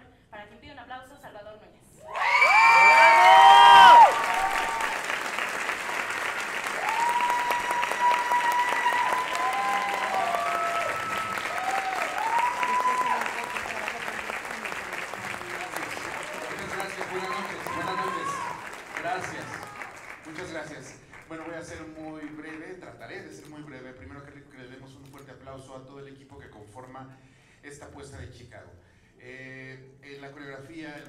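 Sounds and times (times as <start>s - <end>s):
audience whooping and shouting: 2.0s - 5.4s, 6.4s - 20.1s
audience clapping: 2.1s - 22.8s.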